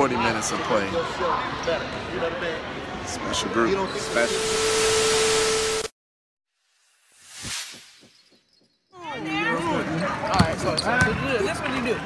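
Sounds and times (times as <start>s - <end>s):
people talking: 3.1s - 4.4s.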